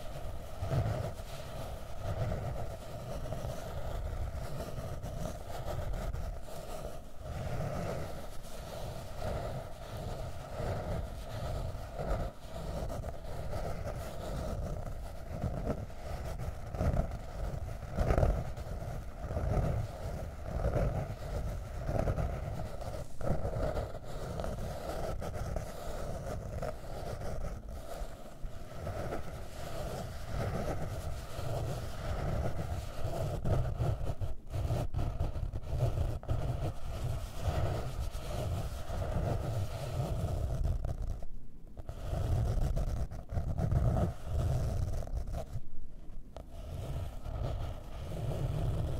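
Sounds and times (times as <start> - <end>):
fingernails scratching notebook cover: 0.0 - 48.9.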